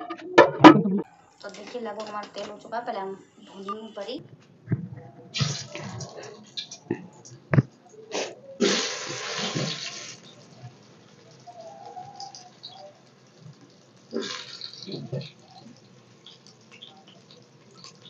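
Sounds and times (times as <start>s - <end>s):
food sizzling in hot oil: 8.1s - 18.0s.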